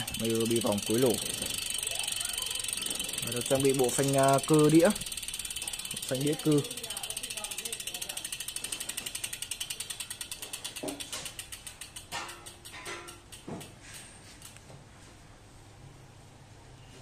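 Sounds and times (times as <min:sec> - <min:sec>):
bicycle freewheel ratchet clicking: 0:00.0 - 0:14.7.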